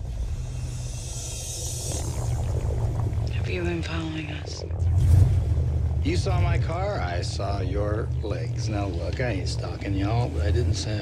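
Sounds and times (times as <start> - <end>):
deep rumble with hiss: 0.0 - 11.0.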